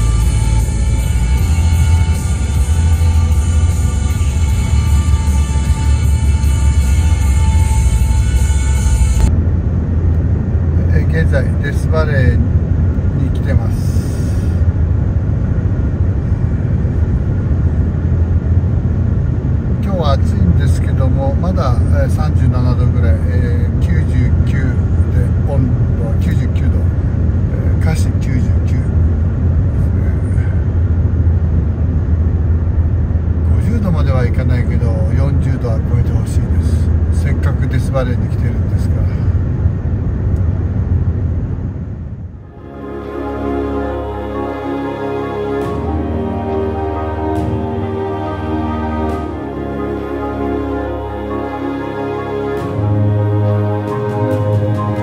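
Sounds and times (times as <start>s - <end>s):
car road and engine rumble: 0.0s - 55.0s
people talking: 10.8s - 12.4s, 13.1s - 14.6s, 19.8s - 26.9s, 27.5s - 29.0s, 29.8s - 30.6s, 33.5s - 39.4s.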